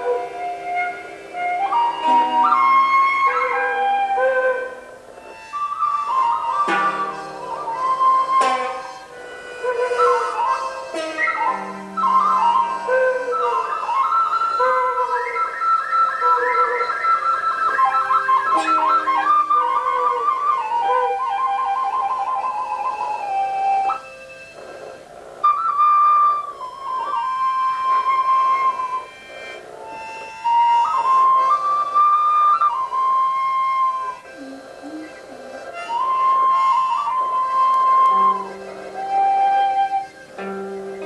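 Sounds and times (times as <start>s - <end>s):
flute-like wind instruments melody: 0.0s - 41.0s.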